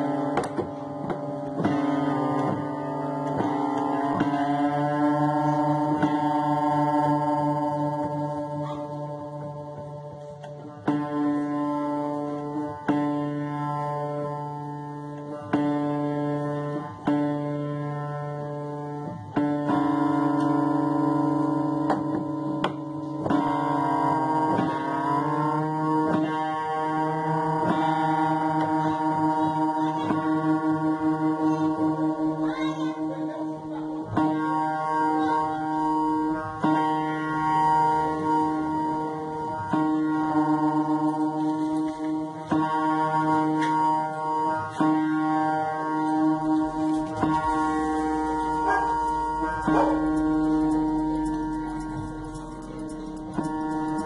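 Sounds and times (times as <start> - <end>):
piano note rising in pitch: 19.3 - 54.0.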